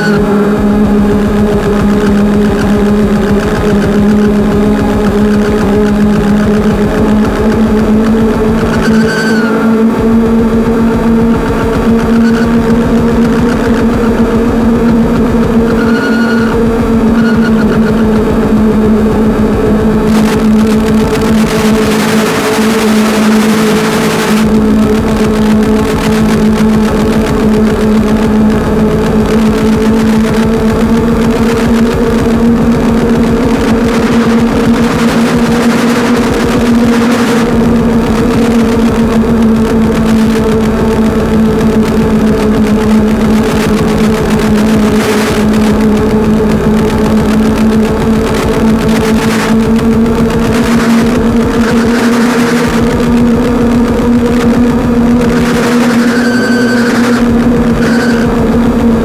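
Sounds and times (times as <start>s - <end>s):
distorted metal guitar music: 0.0s - 59.0s.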